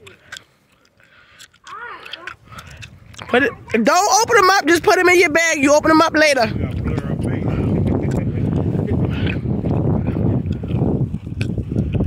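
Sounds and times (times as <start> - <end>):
child calling: 1.6 - 2.4, 3.2 - 6.5.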